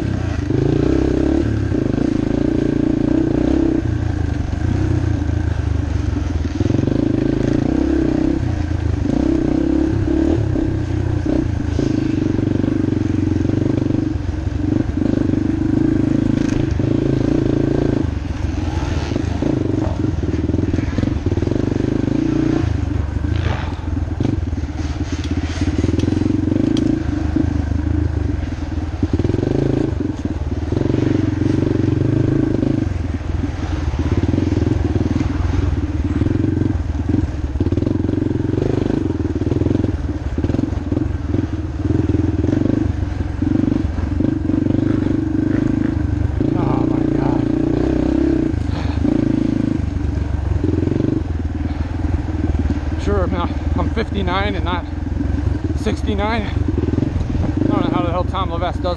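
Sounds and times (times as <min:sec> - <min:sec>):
dirt bike engine revving: 0:00.0 - 0:58.9.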